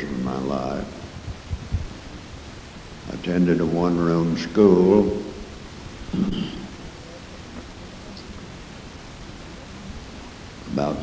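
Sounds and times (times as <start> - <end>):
tape hiss and low rumble: 0.0 - 11.0.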